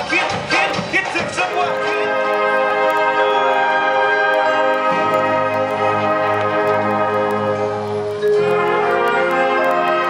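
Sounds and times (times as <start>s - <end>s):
marching band playing chords: 0.0s - 10.0s.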